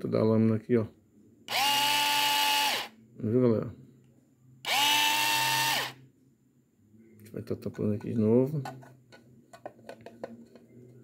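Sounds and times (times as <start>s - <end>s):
small electric chopper motor whining: 1.5s - 2.9s, 4.7s - 6.0s.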